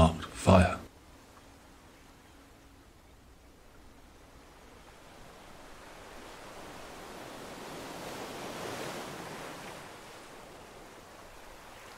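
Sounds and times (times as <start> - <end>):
sea waves washing in: 0.0 - 11.9.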